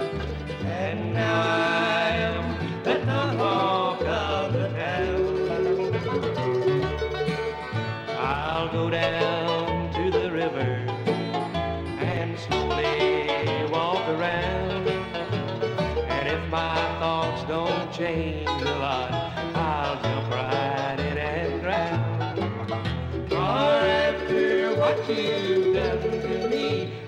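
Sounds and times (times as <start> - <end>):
banjo: 0.0 - 27.0
bluegrass band playing: 0.0 - 27.0.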